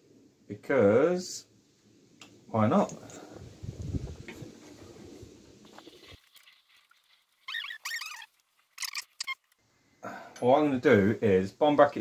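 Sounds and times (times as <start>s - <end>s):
short squeaks: 7.4s - 9.5s.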